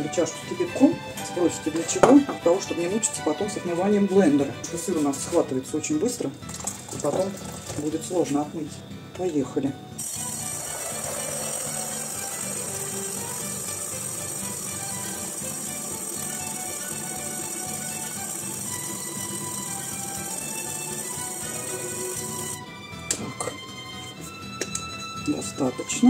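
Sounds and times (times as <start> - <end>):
stick blender running: 10.0 - 22.6.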